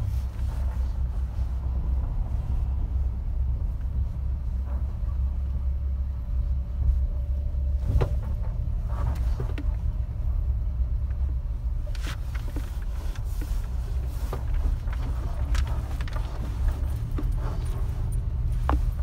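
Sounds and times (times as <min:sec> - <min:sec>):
engine and road rumble: 0:00.0 - 0:19.0.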